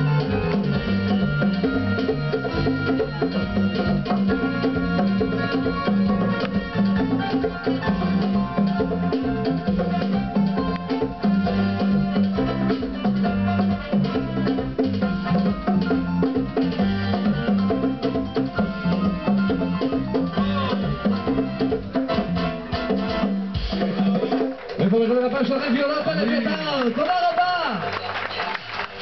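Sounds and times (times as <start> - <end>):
steady bass line: 0.0 - 23.7
hand drums: 0.0 - 24.8
keyboard: 0.0 - 29.0.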